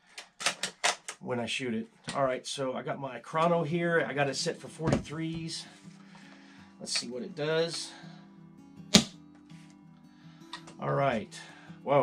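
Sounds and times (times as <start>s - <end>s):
soft guitar music: 3.3s - 12.0s.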